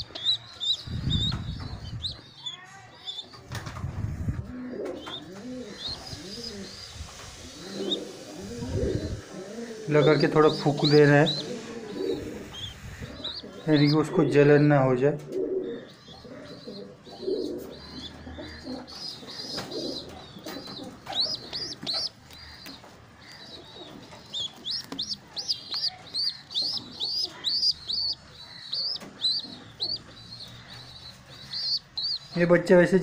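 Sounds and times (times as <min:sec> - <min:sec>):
baby pigeon squeaking peeps: 0:00.0 - 0:32.7.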